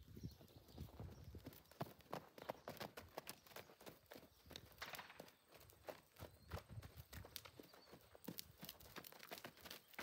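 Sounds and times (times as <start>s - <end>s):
hoofbeats on packed dirt: 0.0s - 10.0s.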